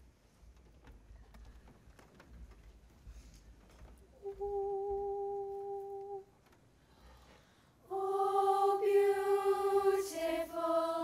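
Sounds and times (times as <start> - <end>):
faint room noise: 0.0 - 11.0
youth choir singing: 7.9 - 11.0.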